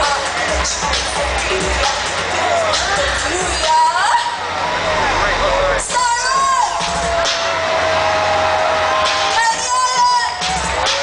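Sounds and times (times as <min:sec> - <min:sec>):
amplified vocals: 0:00.0 - 0:07.4
bass-heavy backing track: 0:00.0 - 0:11.0
crowd voices: 0:00.0 - 0:11.0.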